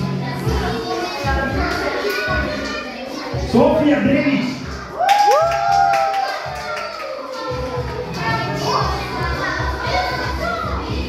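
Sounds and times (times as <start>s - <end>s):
children chattering: 0.0s - 4.9s, 6.3s - 11.0s
background music with steady beat: 0.0s - 11.0s.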